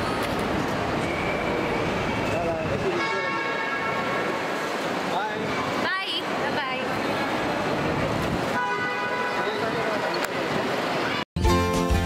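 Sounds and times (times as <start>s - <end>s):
car horn: 2.9s - 4.4s, 8.5s - 9.8s.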